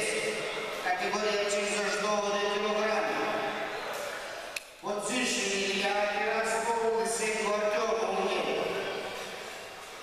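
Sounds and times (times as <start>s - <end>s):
crowd chatter echoing: 0.0s - 10.0s.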